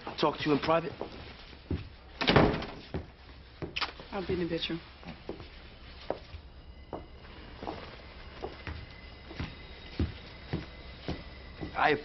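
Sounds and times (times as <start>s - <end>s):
door shutting with thud: 2.2s - 2.8s.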